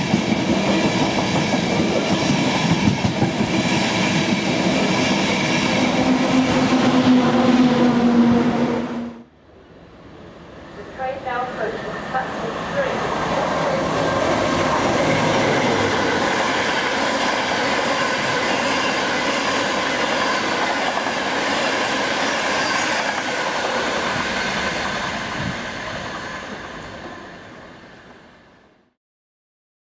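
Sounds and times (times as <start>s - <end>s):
train wheels rushing on rail: 0.0s - 9.2s, 10.4s - 28.5s.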